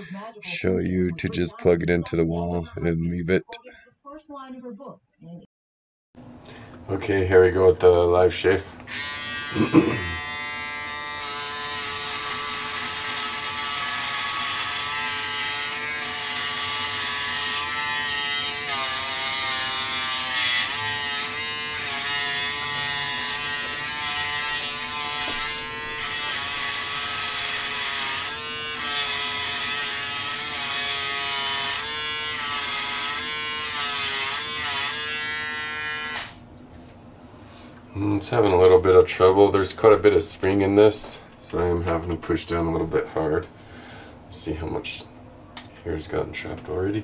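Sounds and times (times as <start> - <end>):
electric shaver buzzing: 8.4 - 36.4.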